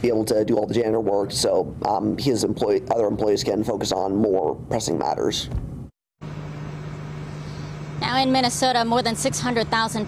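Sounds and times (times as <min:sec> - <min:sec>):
outdoor low hum: 0:00.0 - 0:10.0.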